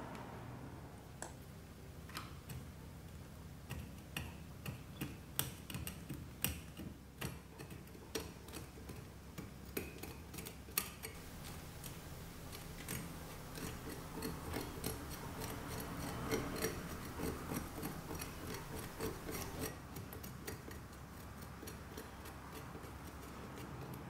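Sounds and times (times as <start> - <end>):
metal pick scratching soil: 9.9 - 24.0.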